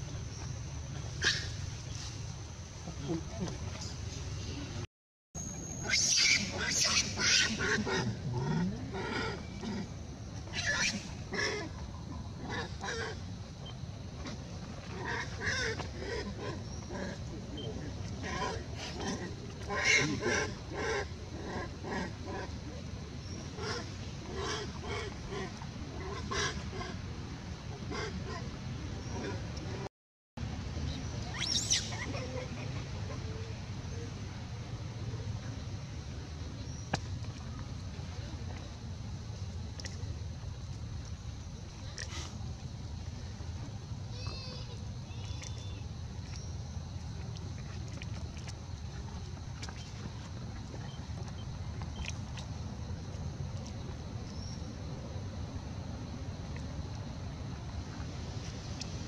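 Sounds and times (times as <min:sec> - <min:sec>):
monkeys squeaking and squealing: 0:05.8 - 0:07.7, 0:31.4 - 0:32.3.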